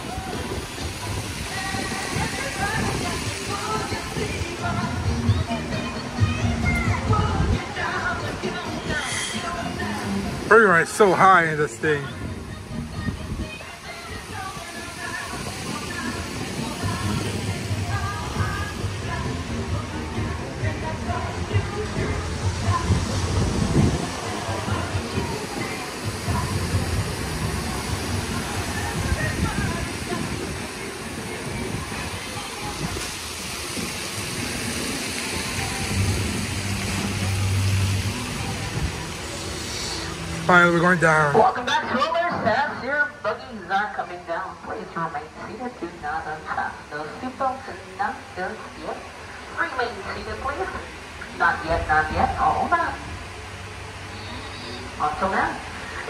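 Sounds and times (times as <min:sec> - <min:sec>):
ride rushing noise: 0:00.0 - 0:44.0
background music: 0:00.0 - 0:56.0
faint voices: 0:00.0 - 0:56.0.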